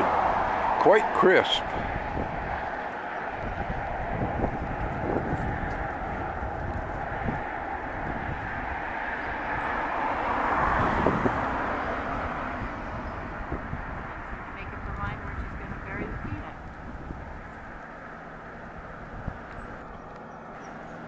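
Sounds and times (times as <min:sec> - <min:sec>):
outdoor background rumble: 0:00.0 - 0:21.0
wind gusting on microphone: 0:00.0 - 0:21.0.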